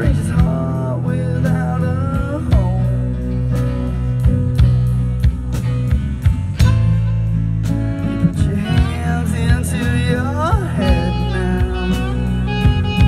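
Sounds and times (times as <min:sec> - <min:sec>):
live rock band playing: 0:00.0 - 0:13.0
sliding lead guitar line: 0:00.0 - 0:13.0.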